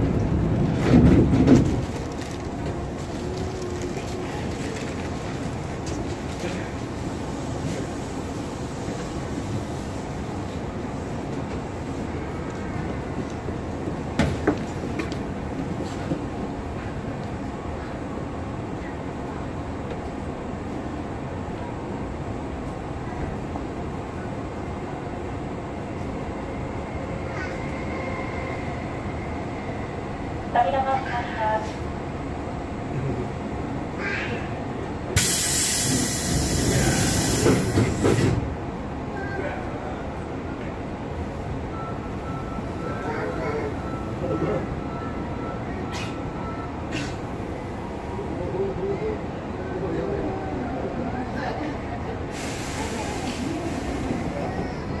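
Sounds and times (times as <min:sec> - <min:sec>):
train interior low rumble: 0:00.0 - 0:55.0
loud hiss: 0:35.2 - 0:38.3, 0:52.3 - 0:54.2.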